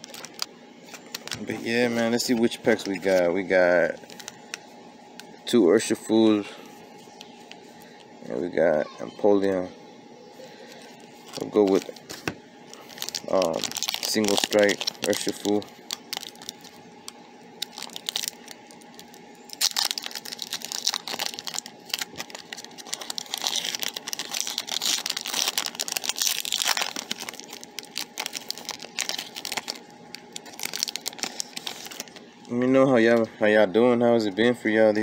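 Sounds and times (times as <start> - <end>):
foil wrapper crinkling and tearing: 0.0 - 3.2, 10.7 - 32.6.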